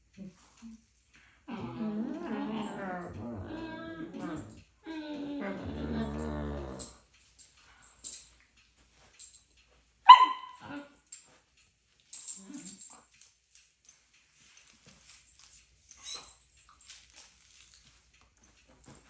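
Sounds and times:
dog grumbling: 0:01.5 - 0:07.0
dog barking: 0:10.1 - 0:10.8.

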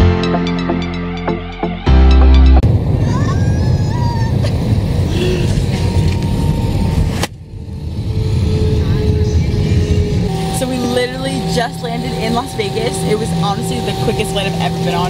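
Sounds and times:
low rumble of engines and airflow: 0:02.6 - 0:15.0
voices: 0:08.2 - 0:15.0.

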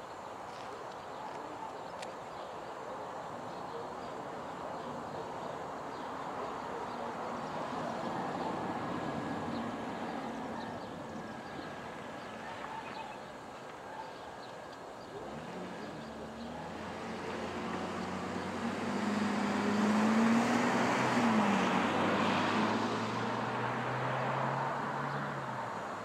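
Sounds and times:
vehicle passing by: 0:05.9 - 0:12.9, 0:15.1 - 0:26.0.

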